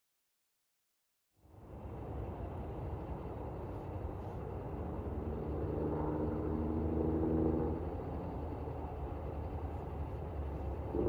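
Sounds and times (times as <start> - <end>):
distant engine drone: 1.4 - 11.0
low outdoor rumble: 1.4 - 11.0.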